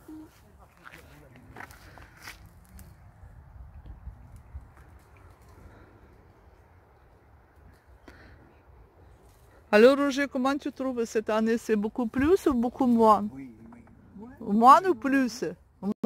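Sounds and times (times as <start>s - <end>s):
footsteps on dry leaves: 0.3s - 3.1s.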